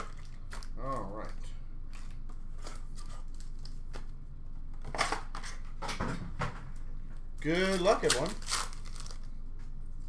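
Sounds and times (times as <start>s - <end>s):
scratchy rustling of foil packs: 7.4s - 9.3s.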